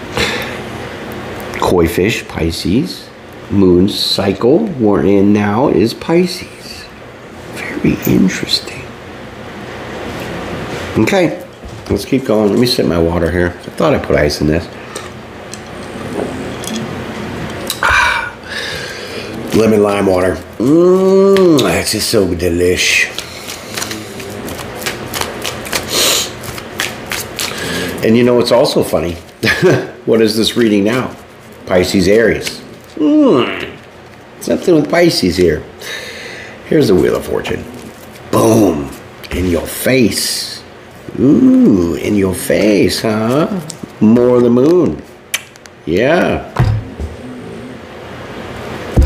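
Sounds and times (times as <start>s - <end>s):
cards being shuffled: 22.7s - 28.0s.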